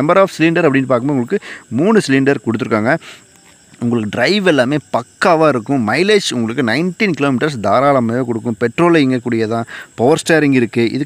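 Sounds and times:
man speaking: 0:00.0 - 0:03.2, 0:03.8 - 0:11.0
high-pitched whine: 0:00.0 - 0:11.0.

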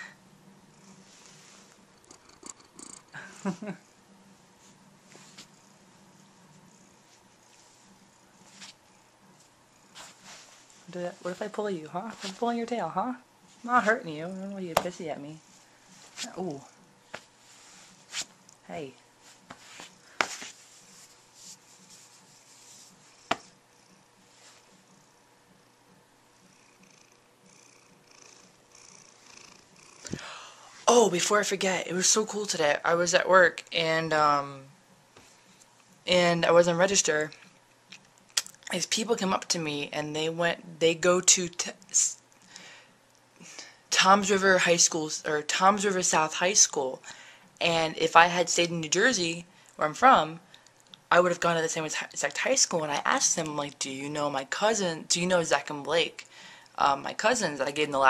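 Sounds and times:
cat purring: 0:00.0 - 0:32.9
woman laughing: 0:03.2 - 0:03.9
rustling of handling: 0:19.2 - 0:23.4.

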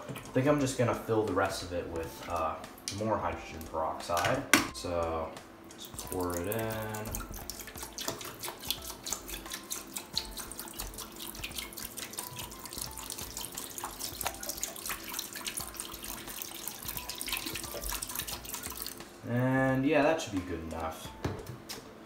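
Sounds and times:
liquid pouring and splashing: 0:05.8 - 0:19.1.

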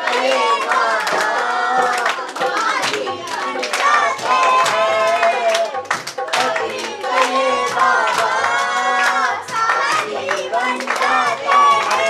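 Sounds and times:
children singing: 0:00.0 - 0:12.0
hand claps: 0:00.0 - 0:12.0.

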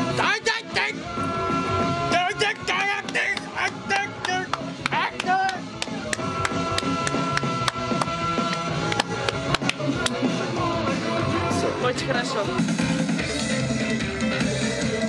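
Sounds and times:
dance-punk song: 0:00.0 - 0:15.0.

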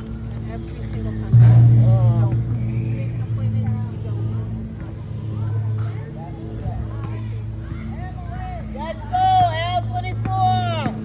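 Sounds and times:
faint voices talking: 0:00.0 - 0:11.0.

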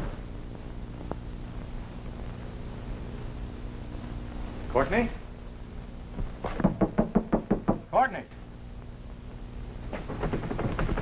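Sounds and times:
knuckles knocking on door: 0:06.6 - 0:07.9, 0:10.1 - 0:11.0.

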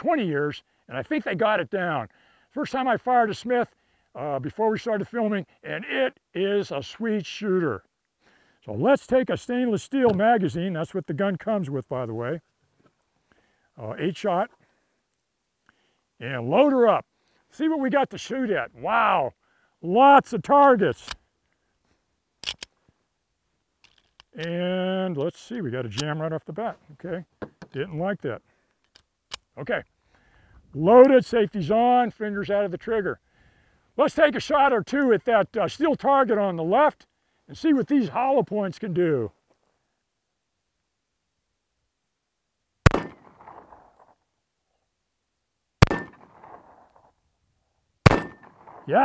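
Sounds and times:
pistol action metallic clicks: 0:22.4 - 0:22.7, 0:42.9 - 0:43.9, 0:45.8 - 0:47.0, 0:48.1 - 0:48.9
steel target ringing: 0:45.8 - 0:46.3, 0:48.1 - 0:48.8.

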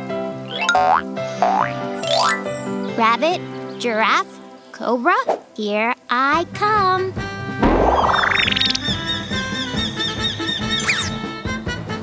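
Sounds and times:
cartoon background music: 0:00.4 - 0:12.0
upward sweeping sound effects: 0:07.6 - 0:09.0.

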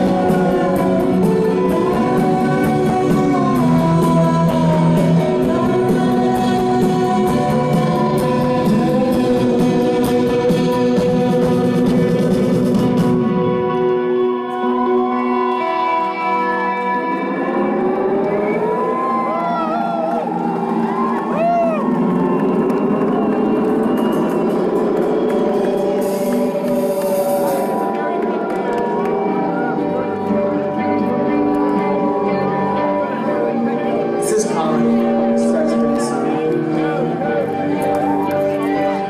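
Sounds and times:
drums: 0:00.0 - 0:16.5, 0:17.7 - 0:39.0
chiming electric guitar chords: 0:00.0 - 0:39.0.

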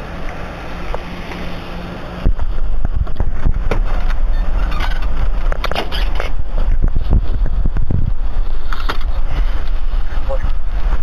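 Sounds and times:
wind on microphone: 0:02.0 - 0:11.0.

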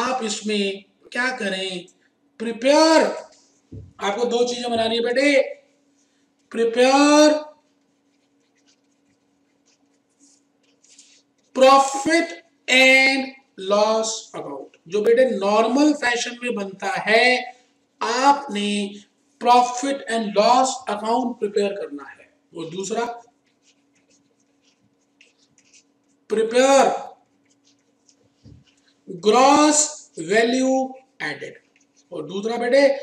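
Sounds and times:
low steady hum: 0:00.0 - 0:33.0
stylus scratching on tablet: 0:02.6 - 0:18.6, 0:19.3 - 0:33.0.

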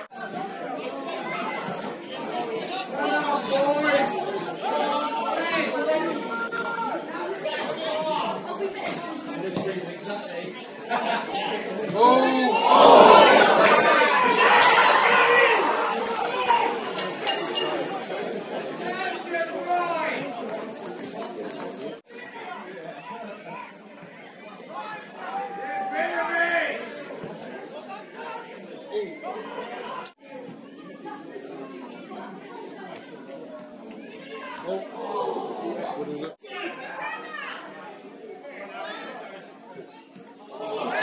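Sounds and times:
crowd voices chattering: 0:00.0 - 0:41.0.

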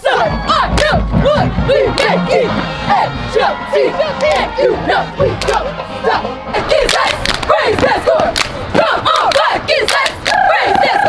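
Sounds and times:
women shouting a chant in unison: 0:00.0 - 0:11.0
sharp percussive hits: 0:00.1 - 0:05.7.

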